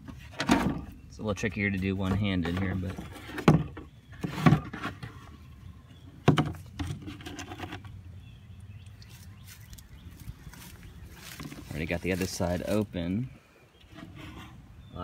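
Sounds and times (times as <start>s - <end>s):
rustling and scraping: 0.0s - 8.0s, 9.0s - 14.8s.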